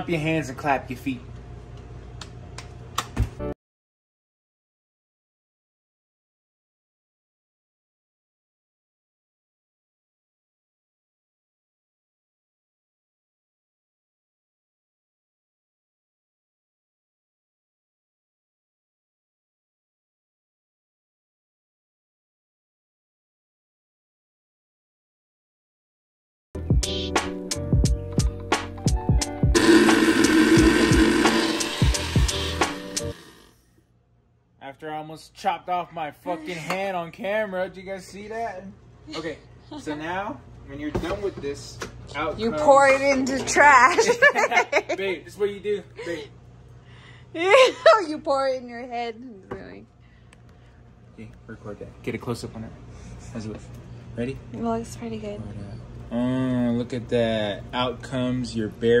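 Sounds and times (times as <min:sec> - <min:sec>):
music with kick-drum beat: 0:26.6 - 0:33.2
blender whirring: 0:29.5 - 0:33.6.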